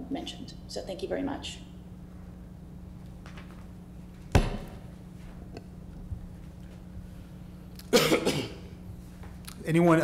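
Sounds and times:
person coughing: 0:07.9 - 0:08.8.

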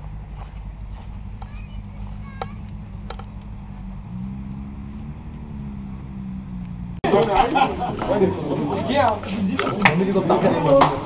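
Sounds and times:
low engine hum: 0:00.0 - 0:10.5.

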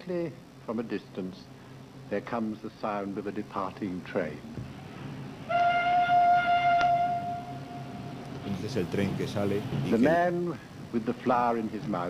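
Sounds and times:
train whistle: 0:05.4 - 0:08.3.

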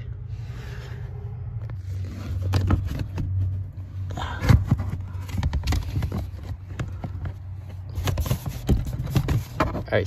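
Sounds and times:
low steady rumble: 0:00.0 - 0:09.8.

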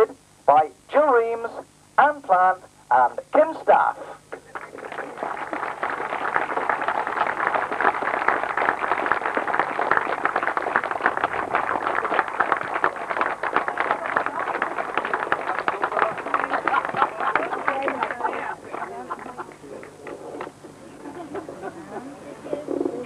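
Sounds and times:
crowd applause: 0:04.4 - 0:20.5.

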